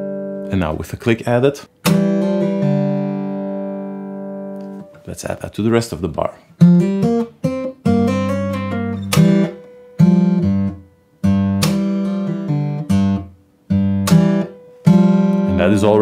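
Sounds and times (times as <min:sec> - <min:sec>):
fingerstyle acoustic guitar blues: 0:01.7 - 0:05.1, 0:06.5 - 0:16.0.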